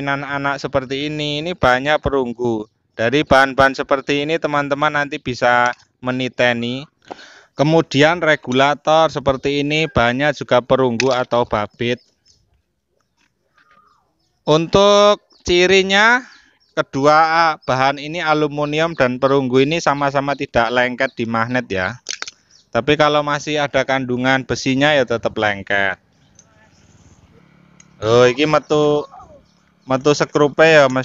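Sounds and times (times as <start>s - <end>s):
light clicks of metal parts: 22.0s - 22.5s.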